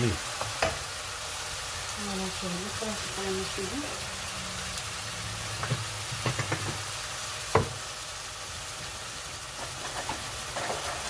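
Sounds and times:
onions sizzling in a pan: 0.0s - 11.0s
wooden spoon knocking on pan: 5.6s - 6.8s, 7.5s - 7.8s.

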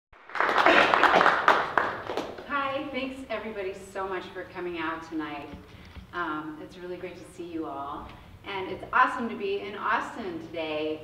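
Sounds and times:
audience applauding: 0.2s - 2.5s.

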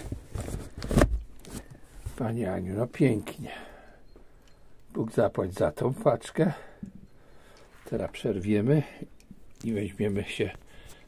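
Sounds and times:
cardboard rustling: 0.0s - 2.2s.

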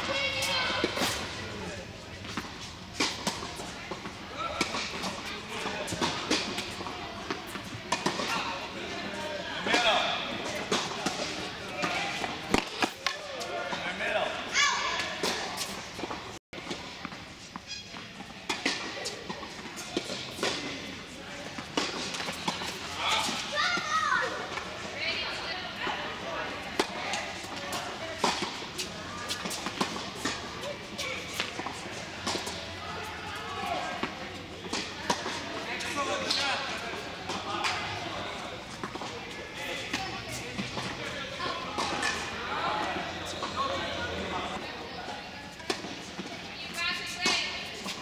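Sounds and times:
tennis ball struck by racket: 10.5s - 13.3s.

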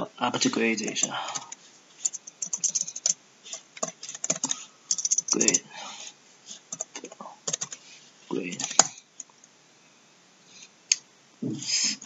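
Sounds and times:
computer keyboard keys clicking: 0.9s - 3.2s, 3.8s - 5.6s, 6.7s - 7.8s, 8.5s - 9.3s.

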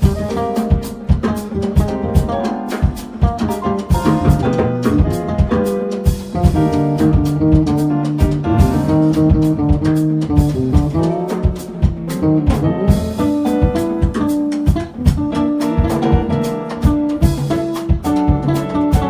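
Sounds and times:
drum kit with cymbals: 0.0s - 19.0s
electric bass guitar: 0.0s - 19.0s
keyboard chords: 0.0s - 19.0s.

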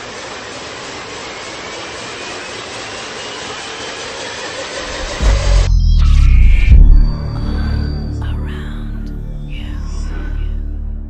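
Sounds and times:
rushing noise with rising tones: 0.0s - 8.3s
deep bass rumble: 4.8s - 11.0s.

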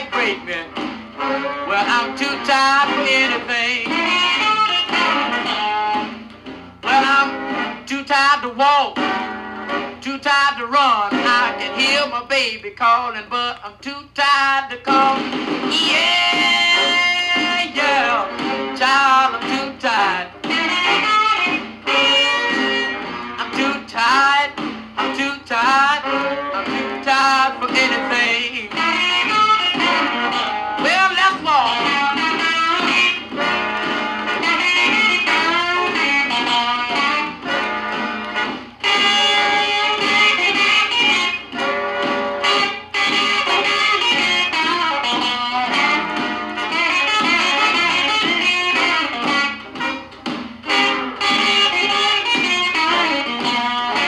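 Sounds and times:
electric guitar solo over band: 15.7s - 19.1s, 20.4s - 24.2s, 25.8s - 54.0s.

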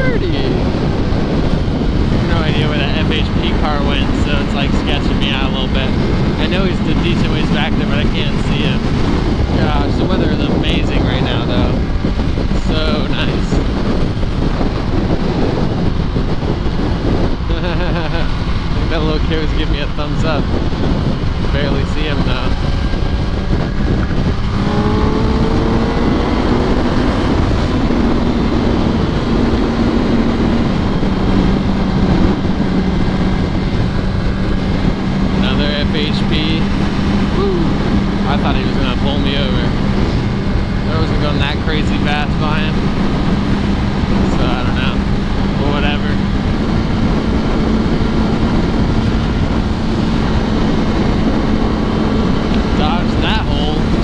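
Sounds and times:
motorcycle engine cruising: 0.0s - 54.0s
wind and road noise: 0.0s - 54.0s.

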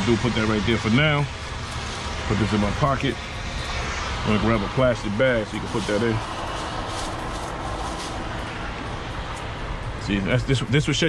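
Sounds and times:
steady outdoor rumbling: 0.0s - 11.0s
plastic bag rustling: 5.6s - 8.5s.

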